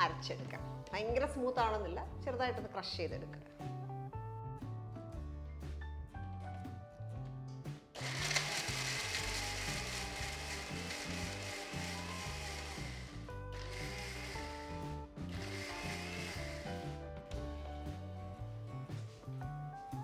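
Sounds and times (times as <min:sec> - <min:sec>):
background music: 0:00.0 - 0:20.0
mixer grinder grinding: 0:08.0 - 0:17.0.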